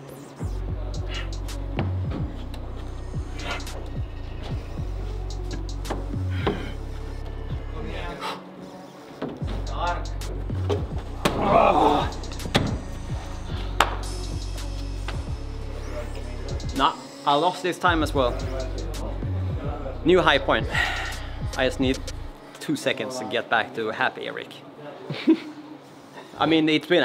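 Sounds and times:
background music with bass and beat: 0:00.0 - 0:08.2, 0:09.4 - 0:17.1, 0:17.9 - 0:22.4.

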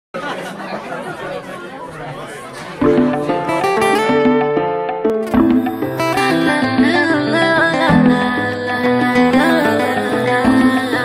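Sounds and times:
crowd chatter: 0:00.2 - 0:11.0.

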